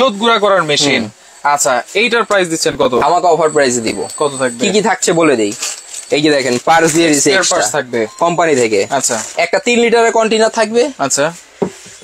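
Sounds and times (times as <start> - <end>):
man talking: 0.0 - 11.4
metal blades jangling in plastic bag: 5.4 - 7.3.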